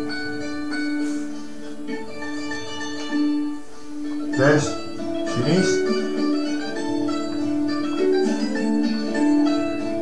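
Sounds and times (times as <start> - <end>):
plucked psaltery folk dance tune: 0.0 - 10.0.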